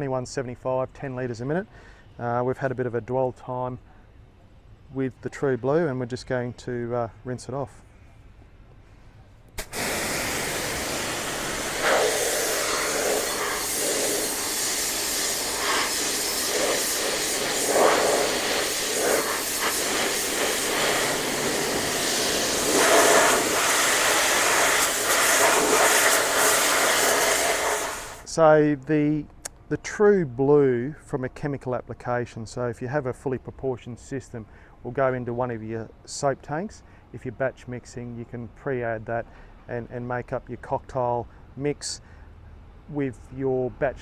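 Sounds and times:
pressure washer jet hissing: 0:09.6 - 0:28.3.

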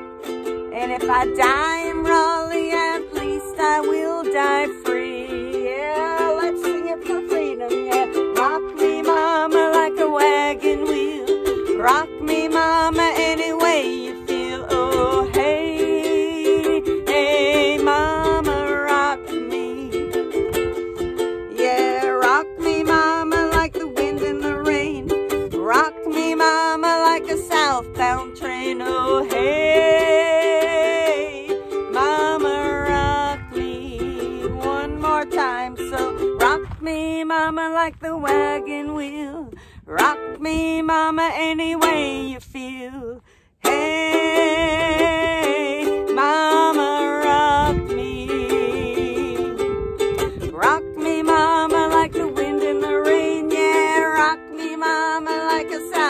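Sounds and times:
ukulele strumming chords: 0:00.0 - 0:43.0, 0:43.6 - 0:56.0.

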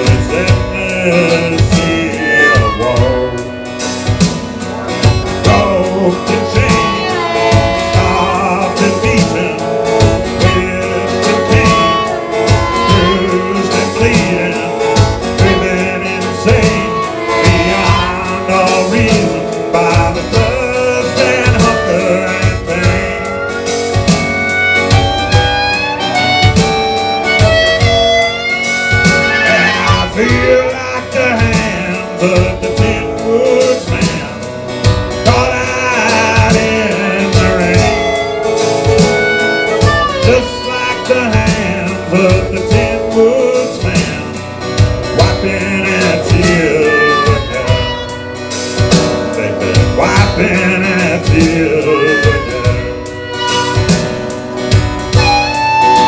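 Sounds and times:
harmonica solo: 0:00.0 - 0:32.5, 0:34.6 - 0:56.0
drum machine beat: 0:00.0 - 0:56.0
strummed acoustic guitar: 0:00.0 - 0:56.0.

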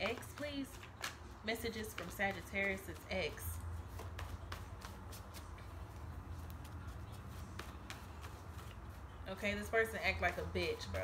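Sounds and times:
cards being shuffled: 0:00.0 - 0:09.2
fan humming: 0:00.0 - 0:11.0.

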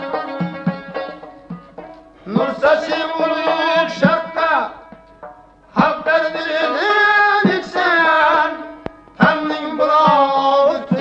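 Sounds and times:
string accompaniment: 0:00.0 - 0:11.0
man singing folk song: 0:02.2 - 0:04.8, 0:05.7 - 0:11.0.

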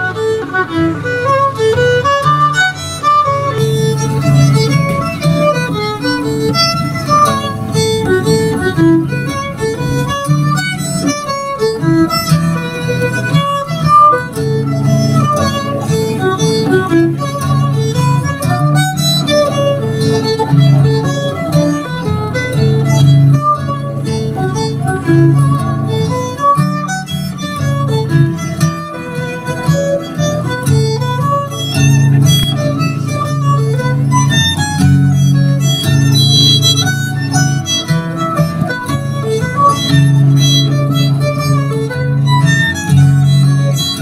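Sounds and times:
acoustic guitar chords: 0:00.0 - 0:44.0
fiddle melody: 0:00.0 - 0:44.0.

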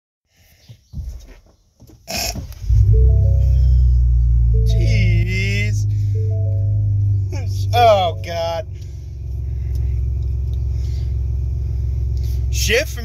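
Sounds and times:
car engine cranking and idling: 0:02.4 - 0:13.0
electronic startup chime: 0:02.7 - 0:08.6
ignition clicks: 0:08.2 - 0:10.7.

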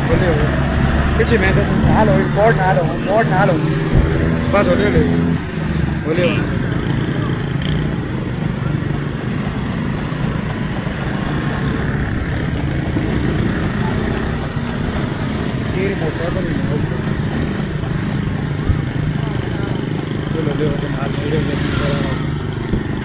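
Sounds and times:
men calling out: 0:00.0 - 0:07.8
small motorcycles running slowly: 0:00.0 - 0:23.0.

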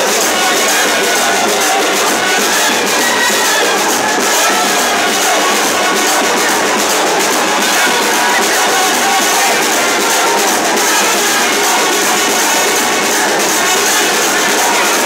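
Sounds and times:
crowd cheering: 0:00.0 - 0:15.0
loud festival music: 0:00.0 - 0:15.0.

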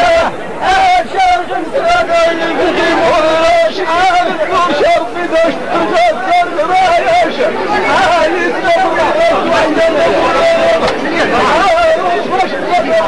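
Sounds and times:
murmur of voices: 0:00.0 - 0:13.0
voices chanting sung poetry: 0:00.0 - 0:13.0.

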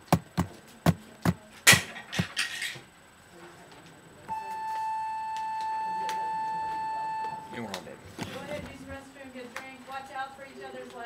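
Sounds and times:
electronic class bell tone: 0:04.3 - 0:07.6.

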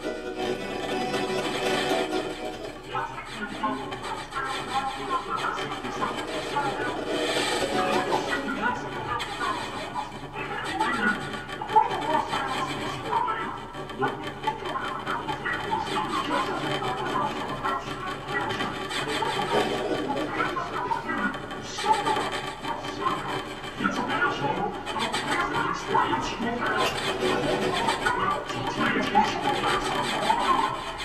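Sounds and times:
laptop electronics: 0:00.0 - 0:31.0
reed instruments: 0:00.0 - 0:31.0.

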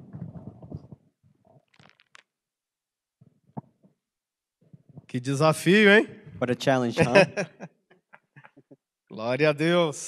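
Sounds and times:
microphone handling noise: 0:00.0 - 0:02.1, 0:04.6 - 0:05.2.

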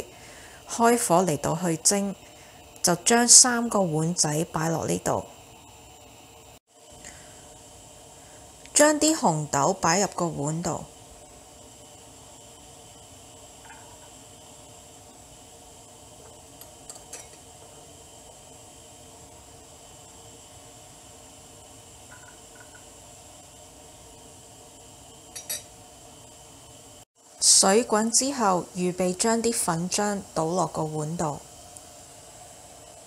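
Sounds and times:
faint steady hum: 0:00.0 - 0:33.0
spoon clinking porcelain bowls: 0:25.4 - 0:25.7.

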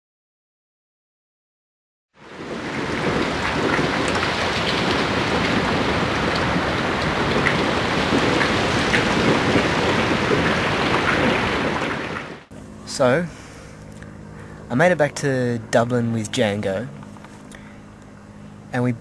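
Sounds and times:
steady downpour of rain: 0:02.2 - 0:12.5.

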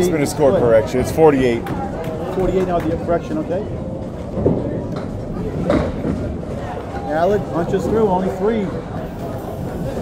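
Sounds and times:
bowling ball rolling: 0:04.0 - 0:08.0.

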